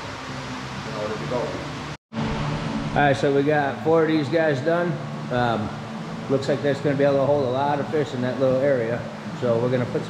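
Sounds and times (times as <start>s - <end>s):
low background hum: 0.0s - 10.0s
man speaking: 3.0s - 10.0s.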